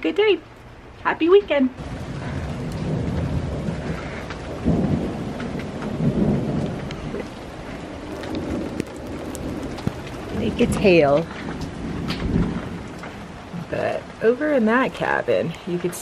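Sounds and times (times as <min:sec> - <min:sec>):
rain and hail on wooden deck: 0:00.0 - 0:16.0
low rumbling: 0:01.8 - 0:14.8.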